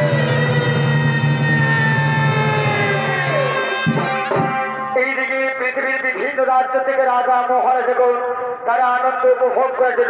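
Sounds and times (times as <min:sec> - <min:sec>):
steady low drone: 0:00.0 - 0:05.0
reed pipe holding long note: 0:00.0 - 0:05.5.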